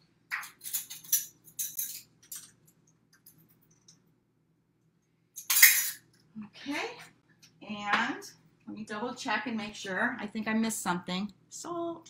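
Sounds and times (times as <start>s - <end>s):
spoon scraping and clinking: 0.4s - 2.5s.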